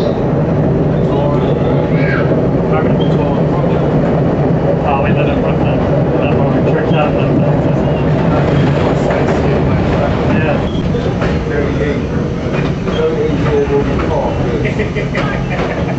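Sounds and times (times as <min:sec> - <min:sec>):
train wheels rumbling on track: 0:00.0 - 0:15.9.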